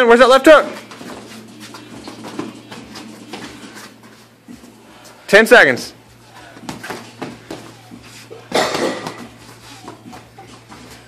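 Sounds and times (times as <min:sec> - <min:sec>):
feet shuffling on canvas: 0:00.7 - 0:05.3, 0:06.5 - 0:08.5, 0:09.1 - 0:11.0
boxing gloves thumping: 0:08.6 - 0:10.3.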